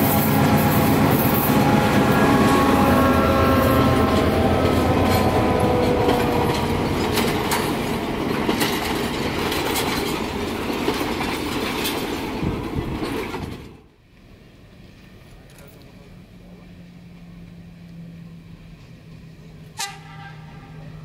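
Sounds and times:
humming tone: 0:00.0 - 0:08.0
train rumbling past: 0:00.0 - 0:21.0
wheels clicking over rail joints: 0:03.9 - 0:13.9.

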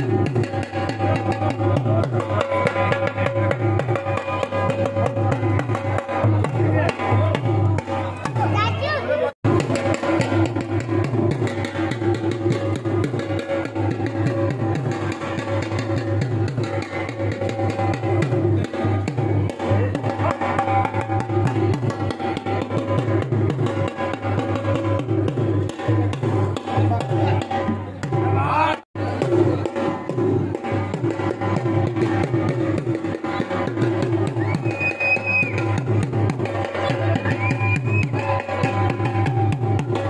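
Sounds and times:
music with quick drum beat: 0:00.0 - 0:40.0.

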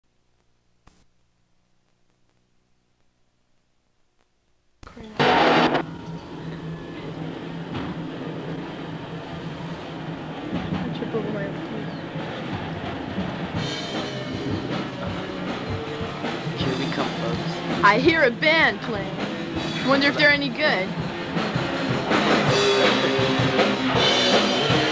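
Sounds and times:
loud burst of noise: 0:05.2 - 0:05.9
muffled thrash metal band: 0:05.2 - 0:24.9.

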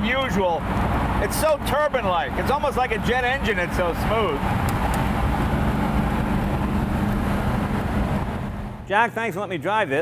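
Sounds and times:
car engine humming: 0:00.0 - 0:08.9
road and wind noise: 0:00.0 - 0:09.1.

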